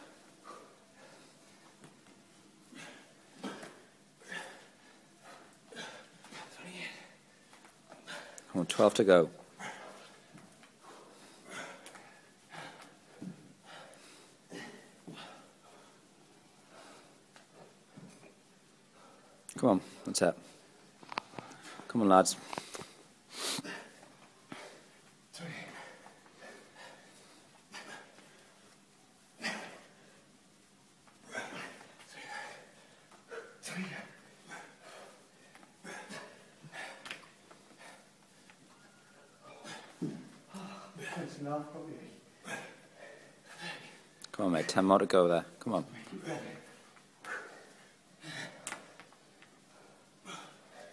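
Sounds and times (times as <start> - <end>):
men breathing heavily: 0.0 - 44.9, 45.8 - 50.9
men grunting: 31.2 - 32.7, 33.3 - 35.2, 39.4 - 44.0, 45.8 - 48.9
short grunt: 33.4 - 34.7
hard exhalations: 45.9 - 49.0, 49.6 - 50.9.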